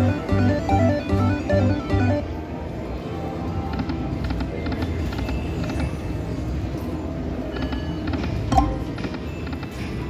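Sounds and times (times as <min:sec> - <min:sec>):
slot machine reels spinning: 0:00.0 - 0:02.4.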